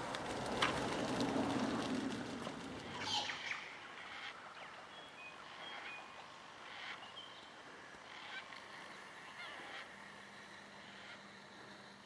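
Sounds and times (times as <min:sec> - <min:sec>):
water and wing noise: 0:00.0 - 0:07.9
harsh falling bird squawk: 0:03.0 - 0:04.4.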